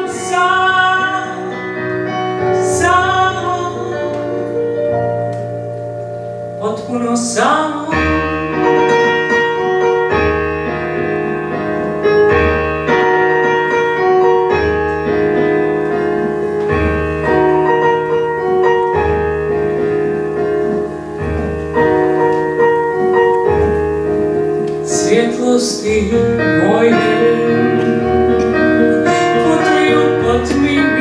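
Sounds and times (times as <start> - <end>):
piano playing slow chords: 0.0 - 31.0.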